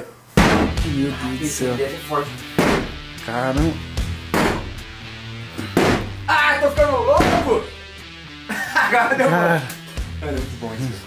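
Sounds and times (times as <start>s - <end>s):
axe striking wooden panelling: 0.4s - 0.8s, 2.6s - 3.0s, 4.3s - 4.8s, 5.7s - 6.2s, 7.2s - 7.6s
background music: 0.4s - 11.0s.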